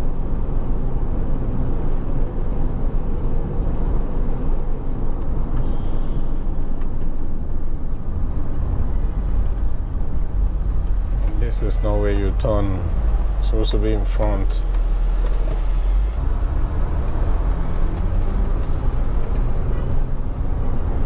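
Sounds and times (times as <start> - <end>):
car driving heard from inside: 0.0 - 21.0.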